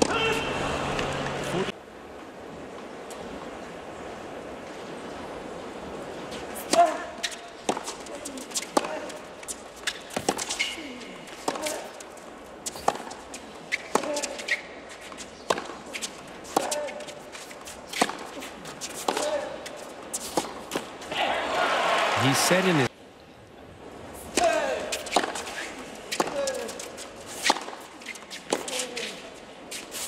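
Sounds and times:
racket striking tennis ball: 6.6 - 11.9, 12.7 - 20.9, 24.3 - 29.1
tennis ball bouncing: 6.6 - 11.9, 12.6 - 20.9, 24.4 - 28.8
sneakers squeaking on court: 7.2 - 11.9, 12.6 - 17.2.

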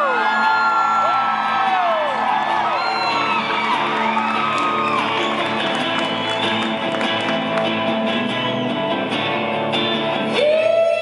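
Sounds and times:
audience whooping: 0.0 - 9.0
electric guitar playing: 0.0 - 11.0.

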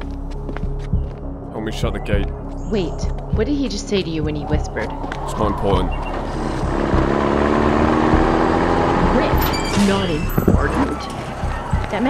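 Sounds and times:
truck engine running: 3.4 - 12.0.

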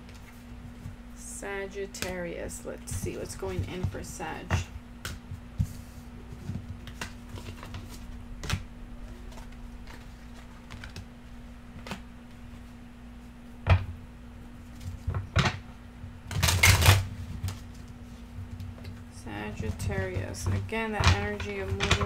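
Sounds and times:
low hum: 0.0 - 16.4
cards being shuffled: 5.0 - 11.1, 11.7 - 12.7
cards tapping and clicking: 6.4 - 8.6, 19.6 - 22.0.

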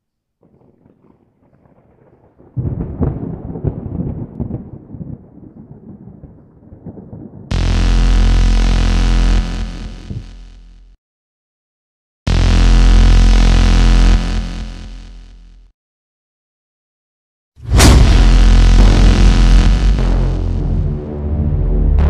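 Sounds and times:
low crackling rumble: 0.4 - 10.4
loud sustained synth drone: 7.5 - 10.8, 12.3 - 15.1, 17.8 - 22.0.

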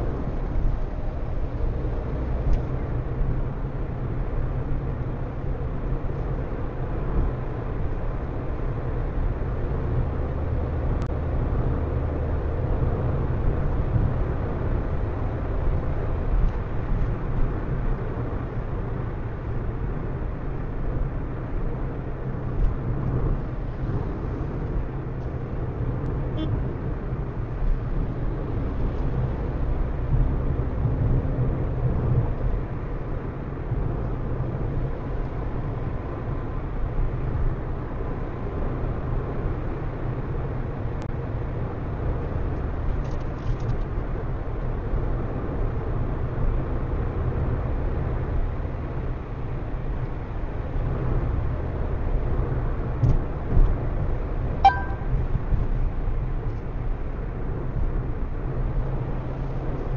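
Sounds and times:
car tyre and engine rumble: 0.0 - 59.9.

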